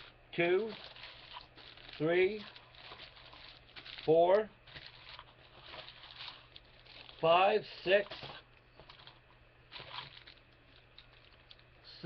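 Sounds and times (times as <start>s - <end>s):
plastic bags crinkling: 0.0s - 11.7s.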